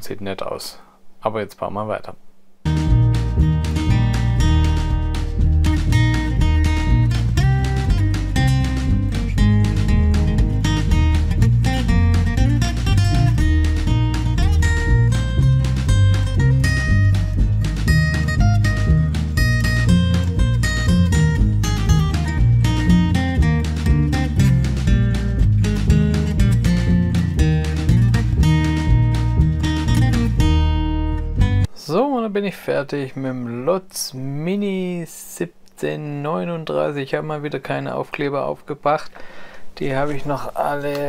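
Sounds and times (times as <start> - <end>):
acoustic guitar instrumental: 2.6 - 31.7.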